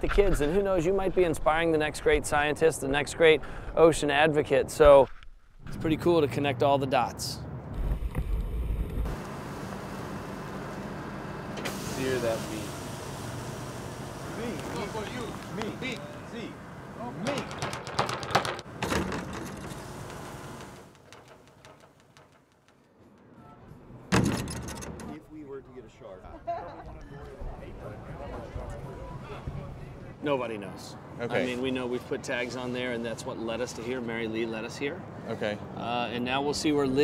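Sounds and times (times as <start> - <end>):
rattle: 17.4 - 22.9
people's voices: 25.1 - 34.0.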